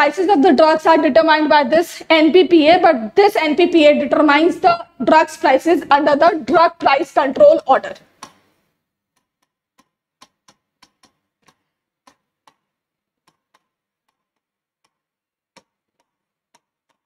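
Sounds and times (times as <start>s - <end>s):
stylus tapping on glass touchscreen: 8.0s - 17.0s.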